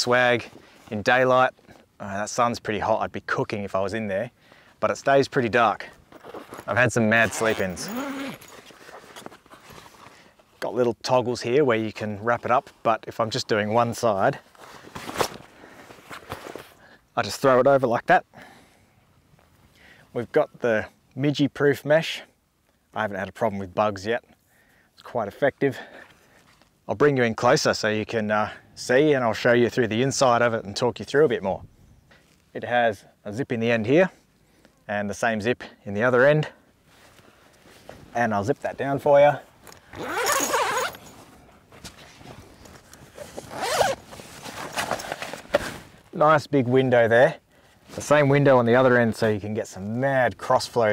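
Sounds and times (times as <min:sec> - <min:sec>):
canvas rustling: 0:06.0 - 0:10.6, 0:14.4 - 0:16.8, 0:36.8 - 0:46.2
zipper being pulled: 0:06.1 - 0:09.8, 0:39.9 - 0:41.2, 0:43.1 - 0:45.9.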